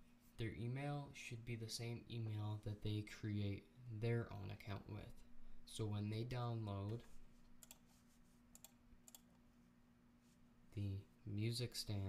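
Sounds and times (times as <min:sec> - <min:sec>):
faint steady hum: 0:00.0 - 0:12.0
computer mouse clicks: 0:07.6 - 0:07.9, 0:08.5 - 0:09.4.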